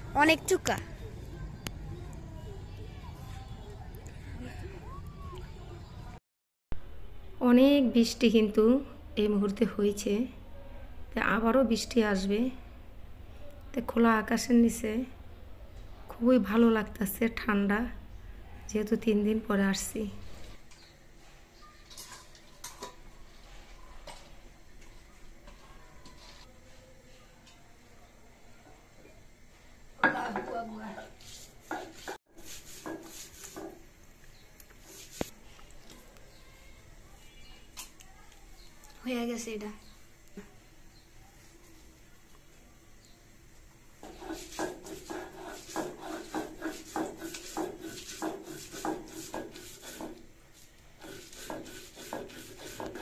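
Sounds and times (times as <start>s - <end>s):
stone roller grinding on stone: 44.0s - 50.2s, 51.0s - 53.0s.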